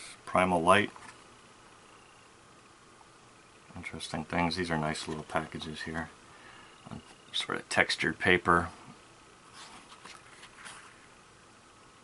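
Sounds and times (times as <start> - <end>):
cardboard package rustling: 9.5 - 11.1.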